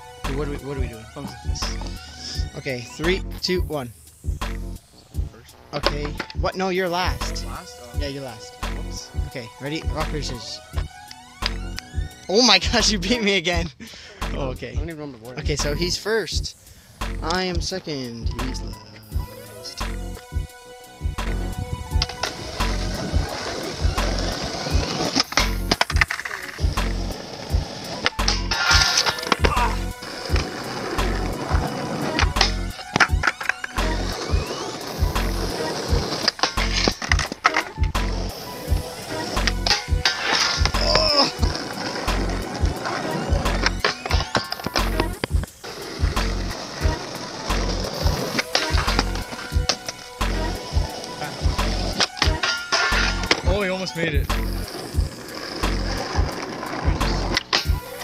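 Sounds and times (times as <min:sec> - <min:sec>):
background music with steady beat: 0:00.0 - 0:58.0
skateboard wheels rolling on asphalt: 0:19.2 - 0:53.6, 0:54.2 - 0:58.0
skateboard grinding on metal rail: 0:21.2 - 0:53.5, 0:54.3 - 0:58.0
skateboard clacks: 0:22.0 - 0:53.5.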